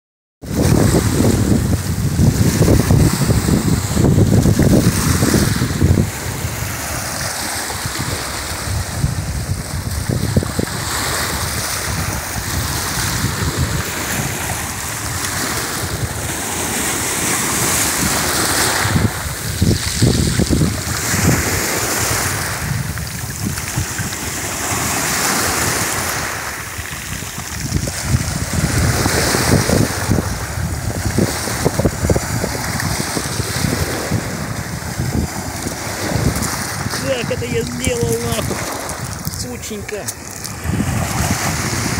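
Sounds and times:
waves washing over pebbles: 0.4 - 41.9
wind buffeting microphone: 0.4 - 41.9.

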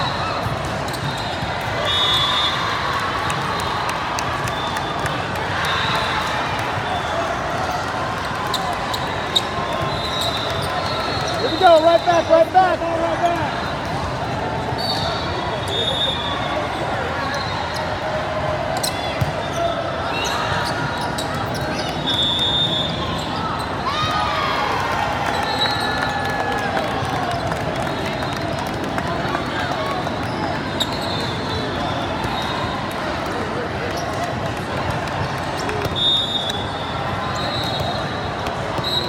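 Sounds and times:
din of voices in gym: 5.1 - 39.0
sneaker squeaks on court: 18.8 - 23.8.

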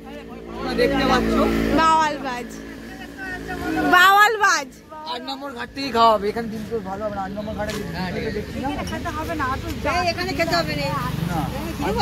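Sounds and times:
engine running: 0.0 - 12.0
people talking: 0.0 - 12.0.

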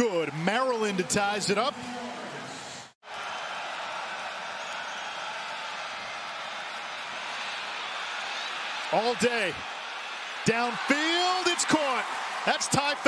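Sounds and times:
stadium crowd noise: 0.0 - 13.0.

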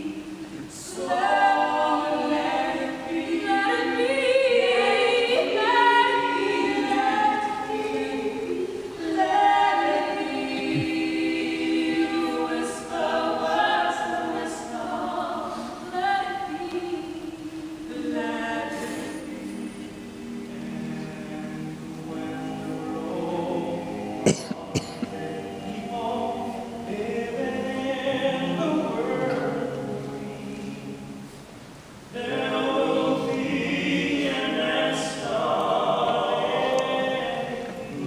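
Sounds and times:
mixed choir singing a cappella: 0.0 - 38.0.

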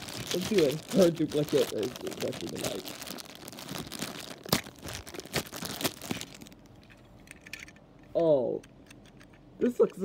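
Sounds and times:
plastic wrapper crinkling: 0.0 - 7.0.

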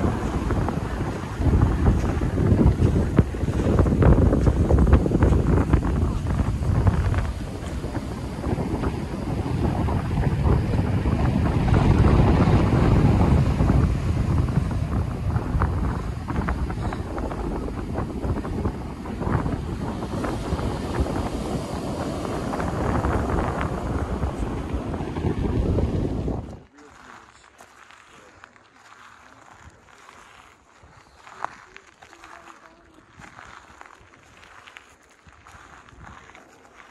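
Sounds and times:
ocean surf breaking: 0.0 - 27.5
wind buffeting microphone: 0.0 - 36.9.

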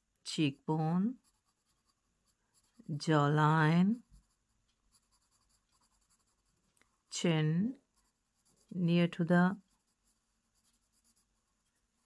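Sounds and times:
person speaking: 0.2 - 1.7, 2.5 - 4.4, 7.1 - 9.9
pencil scratching on paper: 0.4 - 12.0.

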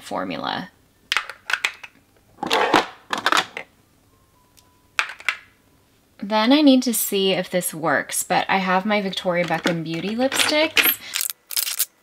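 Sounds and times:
plastic tubes clicking and clattering: 1.1 - 3.6, 9.4 - 11.9.

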